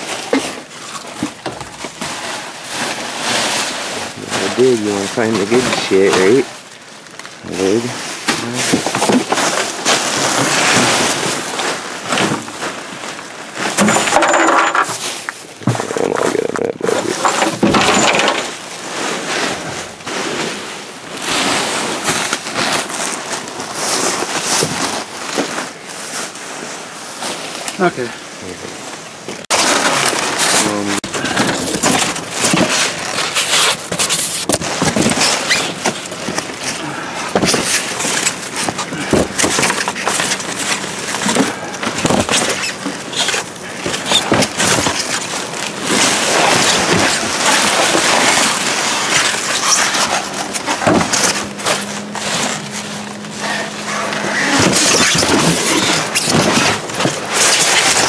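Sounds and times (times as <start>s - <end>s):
plastic bags and bubble wrap crinkling: 0.0s - 58.0s.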